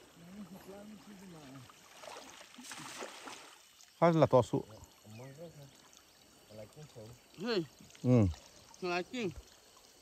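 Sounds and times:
trickling water: 0.0 - 10.0.

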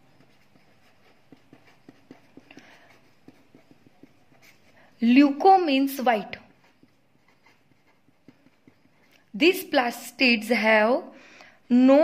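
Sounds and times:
pen writing on paper: 0.0 - 5.0, 6.4 - 9.3.

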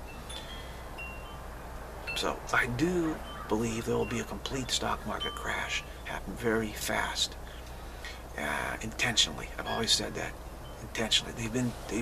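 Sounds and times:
low steady hum: 0.0 - 12.0
short high ringing tones: 9.6 - 10.9.

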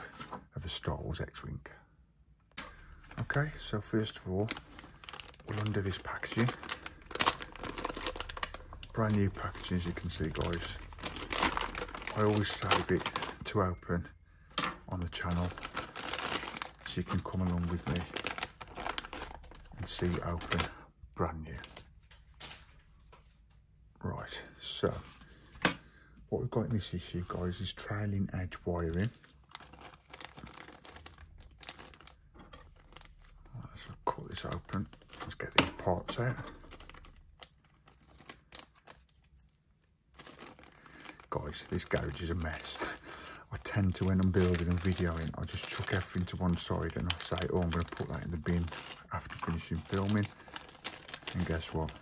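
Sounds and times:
thin plastic crinkling: 2.6 - 13.8, 14.6 - 20.8, 28.6 - 52.0
plastic bag ripping open: 3.2 - 13.5, 15.2 - 20.7, 28.8 - 39.1, 40.1 - 52.0.

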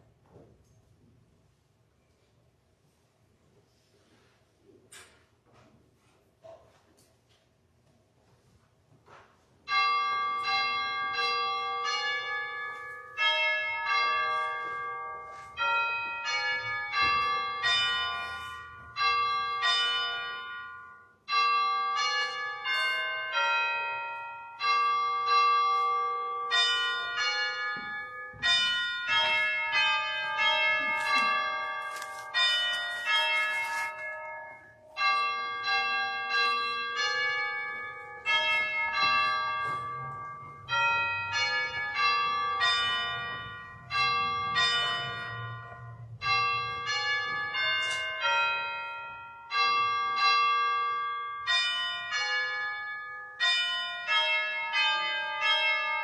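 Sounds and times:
church bells ringing: 9.1 - 56.0.

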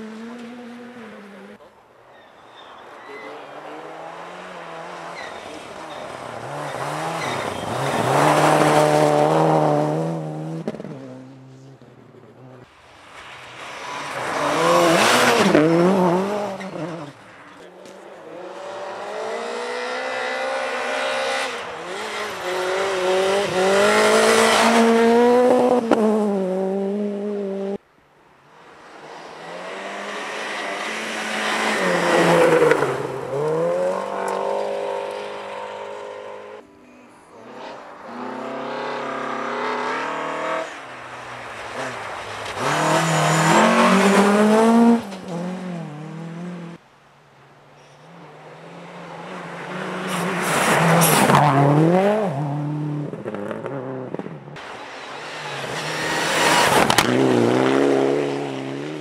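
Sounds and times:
rally cars passing at high revs: 0.0 - 27.8, 28.5 - 46.8, 47.8 - 59.0.

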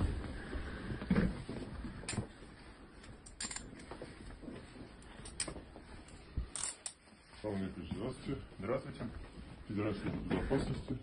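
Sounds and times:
man speaking: 7.4 - 11.0.

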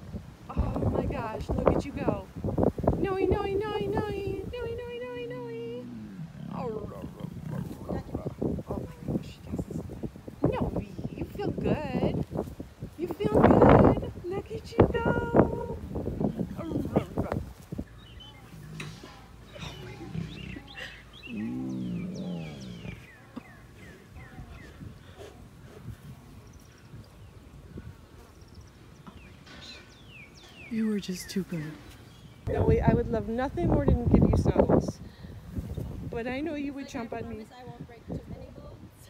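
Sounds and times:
lioness vocalizing low: 3.4 - 9.9, 15.3 - 26.5.

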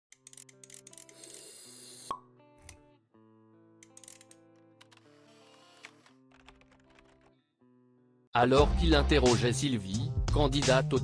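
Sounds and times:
background music: 0.1 - 11.0.

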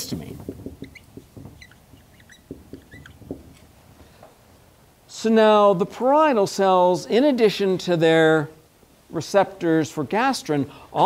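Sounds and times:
marker strokes on board: 0.0 - 3.8
marker squeaking on whiteboard: 0.0 - 3.9.

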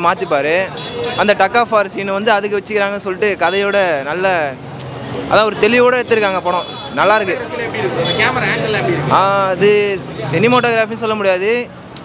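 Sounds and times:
young man speaking into a microphone: 0.0 - 11.8.

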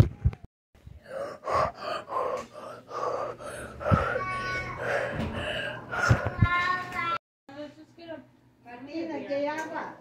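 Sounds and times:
person gasping breaths: 0.9 - 6.8.

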